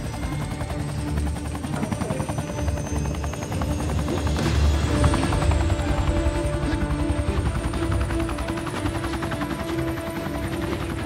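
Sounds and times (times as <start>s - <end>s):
dramatic orchestral film score: 0.0s - 11.0s
helicopter rotor chopping: 0.0s - 11.0s.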